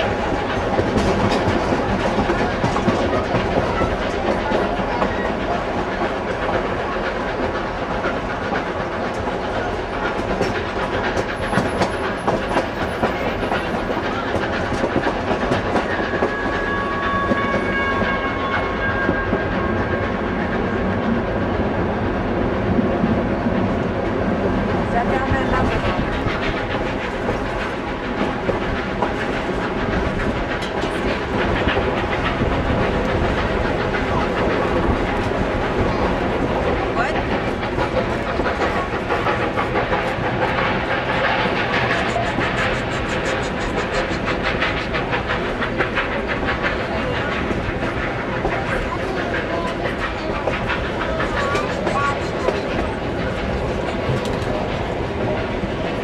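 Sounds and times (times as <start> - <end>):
rail clicks: 0.0 - 56.0
train wheels rumbling: 0.0 - 56.0.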